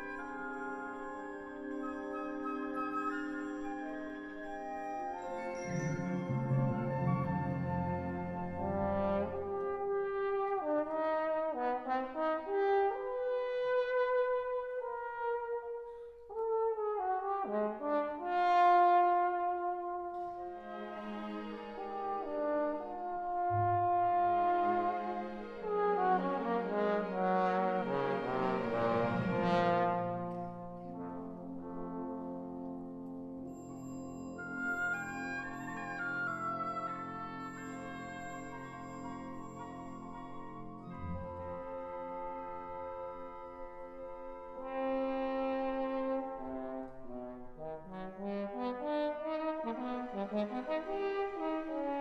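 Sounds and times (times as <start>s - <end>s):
trombones with symphony orchestra: 0.0s - 52.0s.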